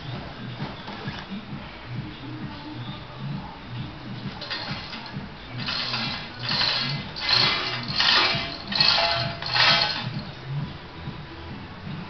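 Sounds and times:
metal hoist chain rattling: 4.4 - 10.4.

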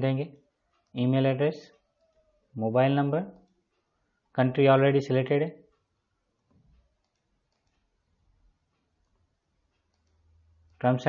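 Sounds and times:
mouse and keyboard clicks: 6.4 - 7.9, 9.8 - 10.2.

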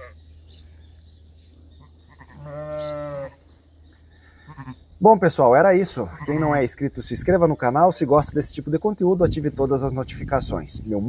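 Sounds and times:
sheep bleating: 2.0 - 3.4, 4.4 - 4.8, 5.8 - 6.7.

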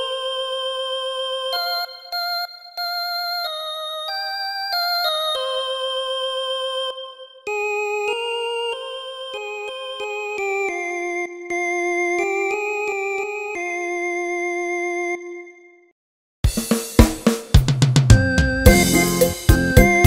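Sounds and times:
synth lead melody on keyboard: 0.0 - 15.9, 18.1 - 20.0.

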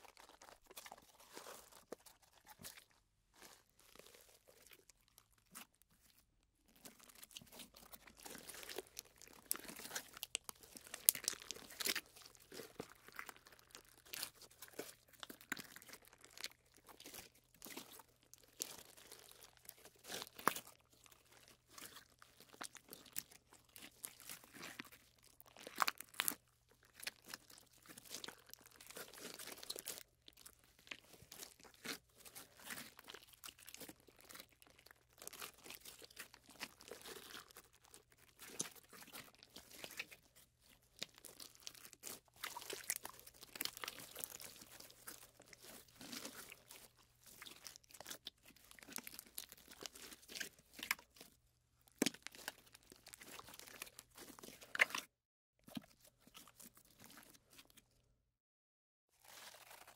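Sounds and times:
slime crackling and popping: 6.8 - 55.1, 59.2 - 59.9.

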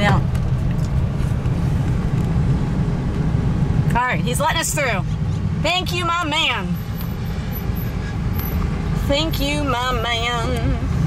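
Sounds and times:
engine and road noise: 0.0 - 11.0.

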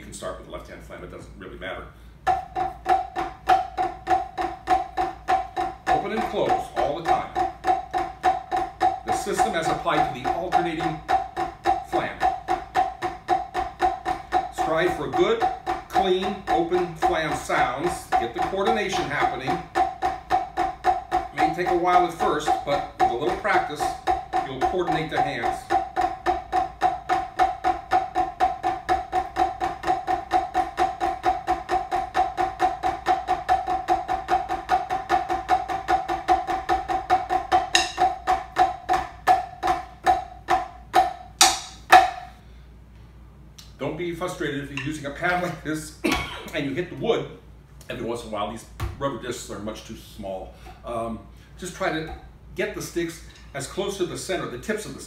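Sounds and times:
drumsticks on practice pad: 2.2 - 42.4.

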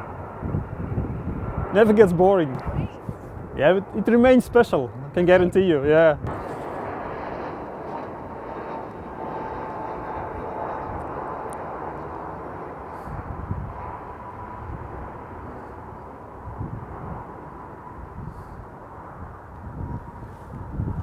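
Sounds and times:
jet engine rumble with whine: 0.0 - 21.0.

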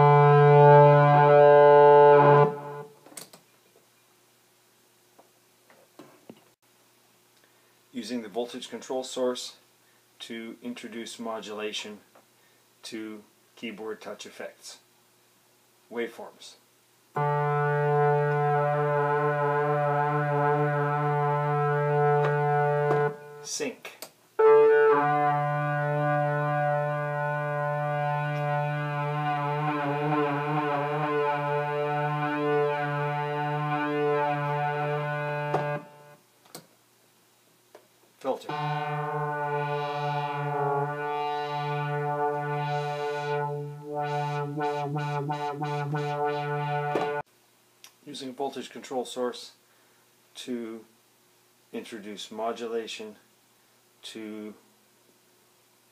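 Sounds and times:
low synthesizer note: 0.0 - 3.0, 17.2 - 23.5, 24.4 - 36.2, 38.4 - 47.2.

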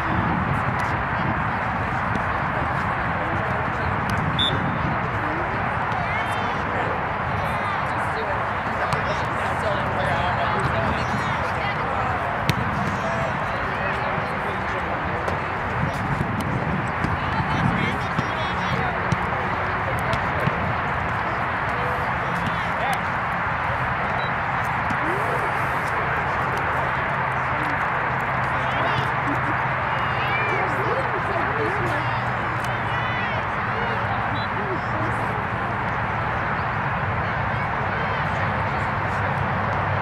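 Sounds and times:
distant chatter of spectators: 0.0 - 40.0.

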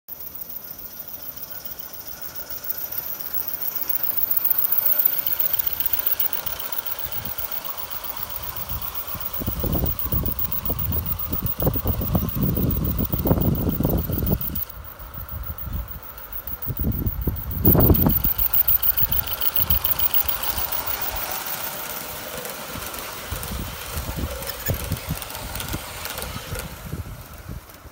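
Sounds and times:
train rumbling and clicking on track: 0.2 - 27.9
steam locomotive exhaust beat: 1.4 - 27.9.

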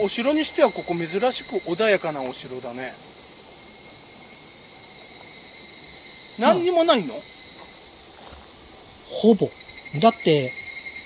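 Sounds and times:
cicadas chorus: 0.0 - 11.0.

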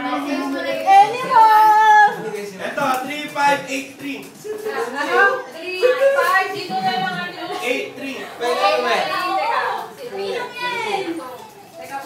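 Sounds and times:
people talking in a group: 0.0 - 12.0.

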